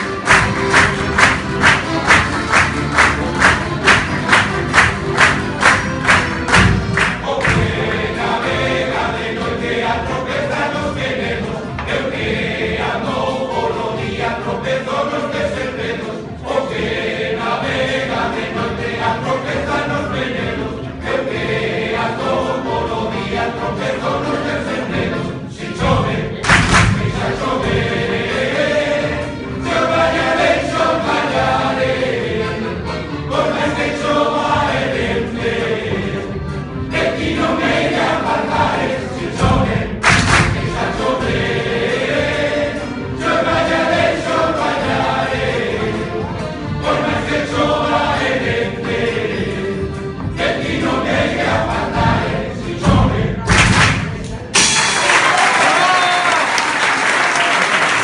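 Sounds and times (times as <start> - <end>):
clapped beat: 0.0 - 8.3, 26.4 - 27.4, 39.4 - 41.0, 53.4 - 58.0
strummed guitars: 0.0 - 12.4
accordion: 0.0 - 54.3
male choir singing: 0.0 - 54.5.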